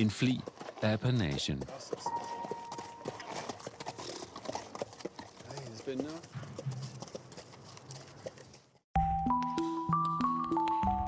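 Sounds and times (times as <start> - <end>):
horse hooves clip-clopping: 0.0 - 8.8.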